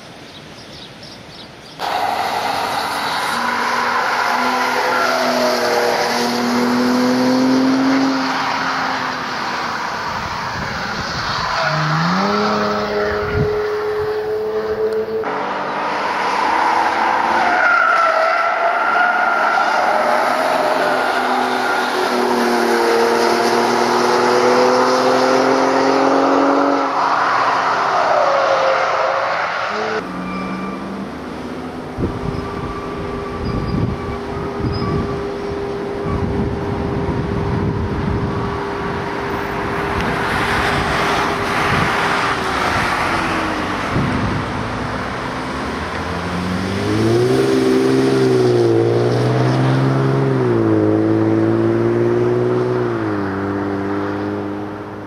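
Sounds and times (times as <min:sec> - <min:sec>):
car engine accelerating hard: 0:01.8 - 0:09.6, 0:10.2 - 0:18.3, 0:19.0 - 0:27.0, 0:31.0 - 0:55.0.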